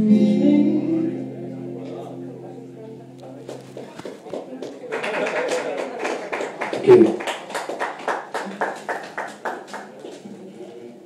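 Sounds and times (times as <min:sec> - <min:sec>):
crowd chatter: 0:00.9 - 0:07.6, 0:08.4 - 0:11.0
audience applauding: 0:03.5 - 0:10.2.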